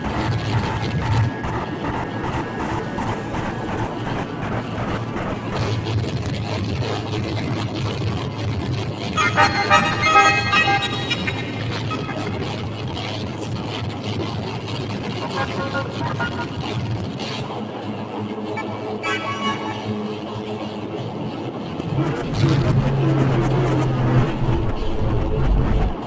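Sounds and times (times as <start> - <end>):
experimental noise music: 0.0 - 26.0
bright pitched tones: 9.2 - 12.9.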